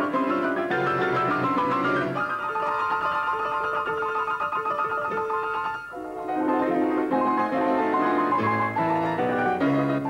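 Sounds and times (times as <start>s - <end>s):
grand piano playing: 0.0s - 10.0s.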